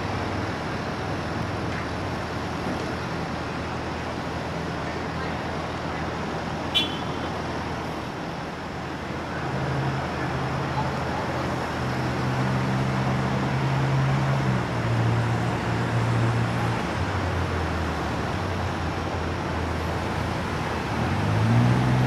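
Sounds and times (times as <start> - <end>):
background traffic noise: 0.0 - 22.0.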